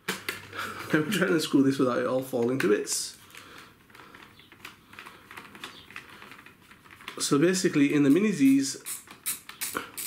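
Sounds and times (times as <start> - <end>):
plastic case handling: 2.3 - 7.5.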